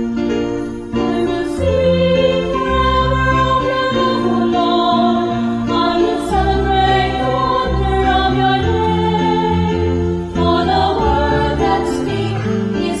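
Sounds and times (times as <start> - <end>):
choir singing a hymn: 0.9 - 13.0.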